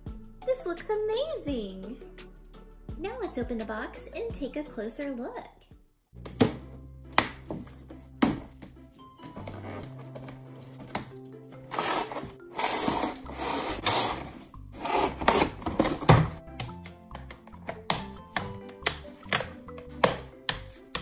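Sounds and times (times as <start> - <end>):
music track: 0.0 - 21.0
cardboard and plastic rustling: 9.1 - 16.4.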